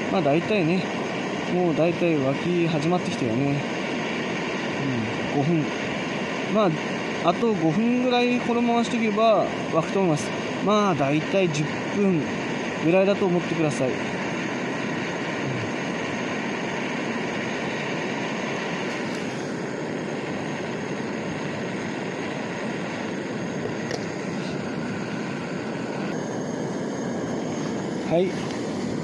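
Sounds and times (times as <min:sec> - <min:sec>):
gas torch hissing: 0:00.0 - 0:29.0.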